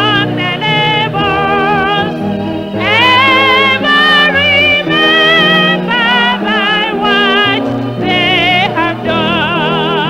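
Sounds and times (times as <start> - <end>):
person singing with vibrato: 0.0 - 10.0.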